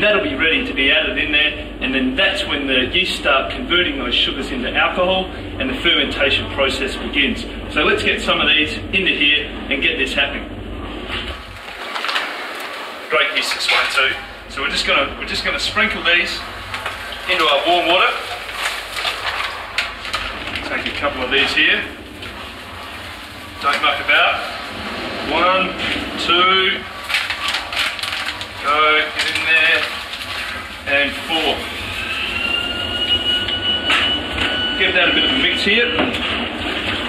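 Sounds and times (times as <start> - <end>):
foil sachets rustling: 11.6 - 33.4.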